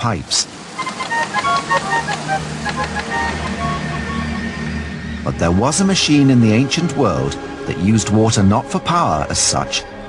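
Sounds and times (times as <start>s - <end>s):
water organ high notes: 0.5s - 10.0s.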